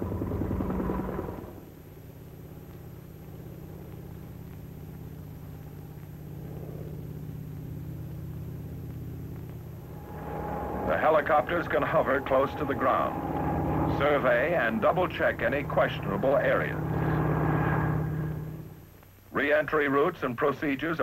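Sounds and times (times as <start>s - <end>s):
helicopter engine and rotor drone: 0.0s - 1.7s, 2.4s - 18.8s.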